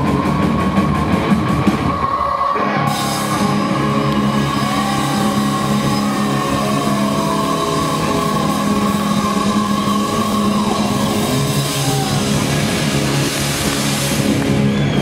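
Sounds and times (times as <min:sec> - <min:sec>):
live heavy metal band: 0:00.0 - 0:15.0.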